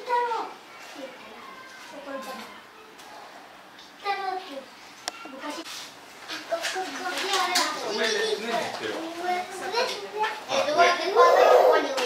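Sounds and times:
children chattering and calling: 0:00.0 - 0:05.6, 0:06.3 - 0:12.0.

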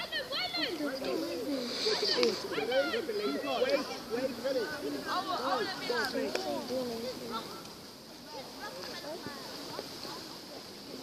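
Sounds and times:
voices talking and calling out: 0:00.0 - 0:11.0
brief hiss: 0:01.6 - 0:02.6.

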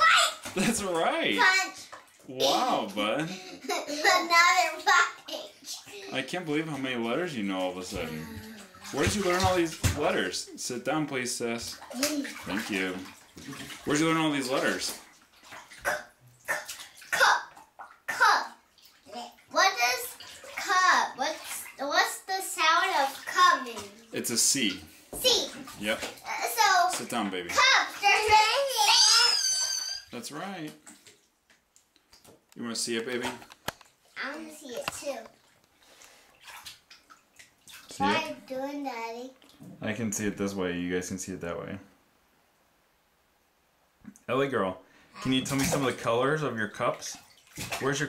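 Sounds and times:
child talking: 0:00.0 - 0:00.5, 0:01.1 - 0:06.3, 0:08.0 - 0:09.0, 0:11.9 - 0:12.6, 0:17.1 - 0:17.5, 0:18.1 - 0:24.1, 0:25.2 - 0:29.7, 0:34.2 - 0:35.4, 0:37.9 - 0:39.4
bathwater splashing: 0:00.0 - 0:41.2, 0:44.2 - 0:48.0.

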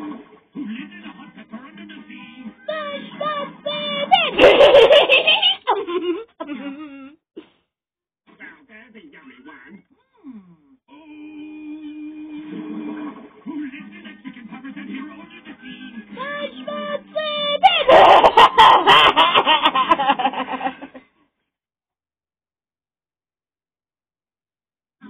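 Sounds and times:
cartoon character voices: 0:02.6 - 0:04.7, 0:16.2 - 0:18.3
cartoon music: 0:02.7 - 0:04.8.

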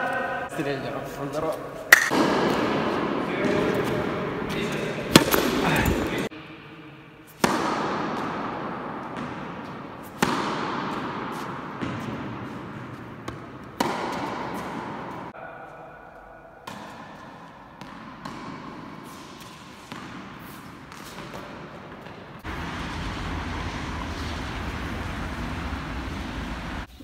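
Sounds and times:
tennis balls bouncing: 0:01.9 - 0:06.3, 0:07.3 - 0:15.4, 0:16.6 - 0:26.9
racket hitting tennis ball: 0:01.9 - 0:15.4, 0:16.6 - 0:26.9.

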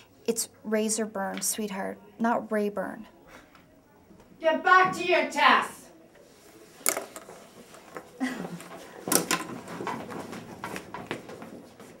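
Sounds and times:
desks and chairs knocking: 0:09.0 - 0:11.7.

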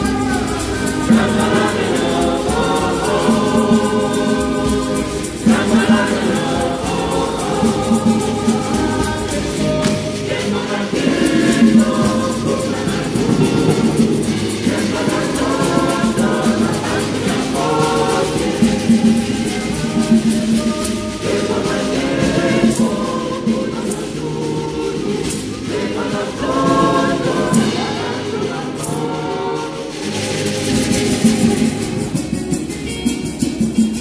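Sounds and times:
choir singing a hymn: 0:00.0 - 0:34.0
hand claps: 0:07.7 - 0:21.4.

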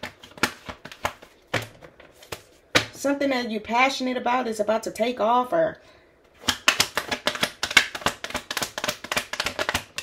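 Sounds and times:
cards being shuffled: 0:00.0 - 0:02.6, 0:06.4 - 0:10.0.

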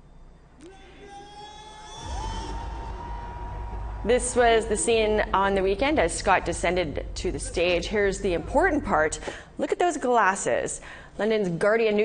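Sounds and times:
deep heavy bass: 0:02.0 - 0:09.1.

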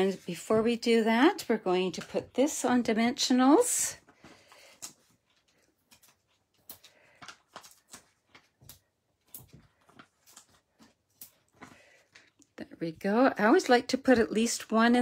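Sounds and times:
paper rustling: 0:04.1 - 0:12.4.

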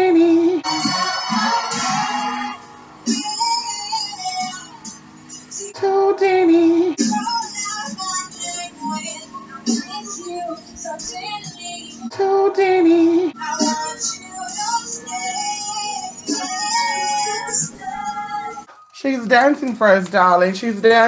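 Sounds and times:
song with sung vocals: 0:00.0 - 0:21.0.

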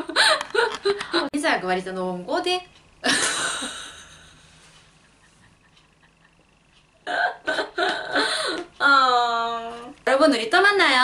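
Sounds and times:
woman laughing in bursts: 0:00.0 - 0:01.3, 0:03.0 - 0:04.4, 0:07.1 - 0:08.6.

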